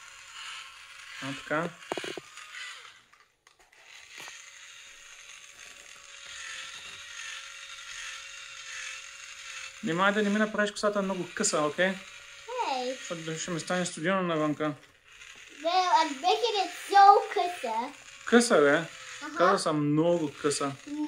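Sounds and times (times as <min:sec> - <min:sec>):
toy drill motor whirring: 0:00.0 - 0:21.0.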